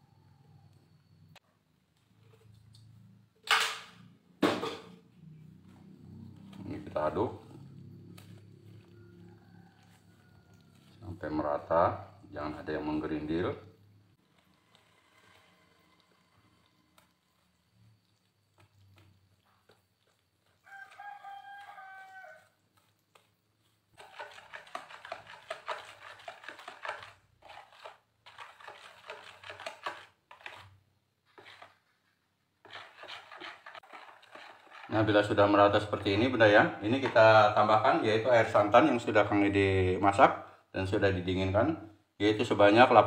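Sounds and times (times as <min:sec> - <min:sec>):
rooster crowing: 0:08.6 - 0:11.0, 0:20.6 - 0:22.6
whisk clicking against bowl: 0:24.0 - 0:30.6, 0:32.7 - 0:35.0.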